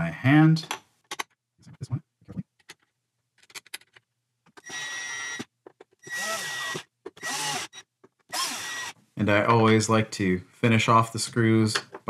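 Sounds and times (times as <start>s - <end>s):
cordless drill driving screws: 4.6s - 9.0s.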